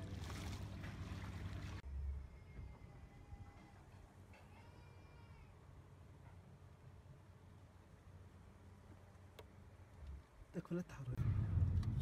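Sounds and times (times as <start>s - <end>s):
faint low outdoor rumble: 0.0s - 12.0s.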